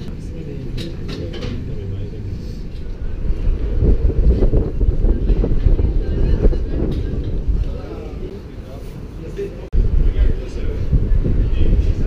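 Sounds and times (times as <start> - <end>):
wind buffeting microphone: 0.0 - 9.1, 9.7 - 12.0.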